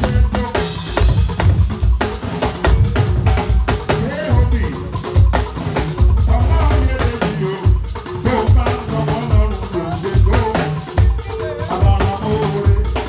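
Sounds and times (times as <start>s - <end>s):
keyboard: 0.0s - 13.0s
live band playing: 0.0s - 13.0s.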